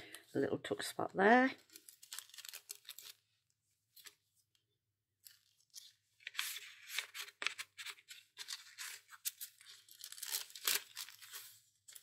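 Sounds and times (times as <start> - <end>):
paper pages rustling: 1.6 - 3.2, 5.2 - 12.0.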